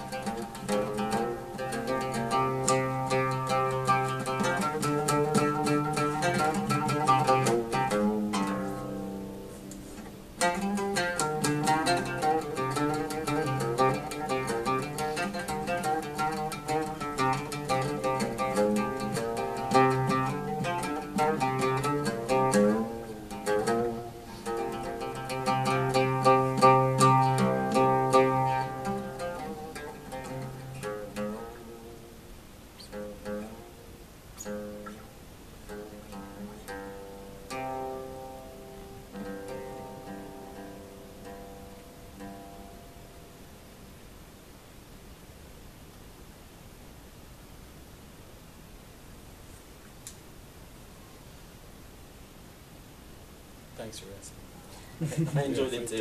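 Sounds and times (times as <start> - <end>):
solo oud plucked runs: 0.0 - 44.5.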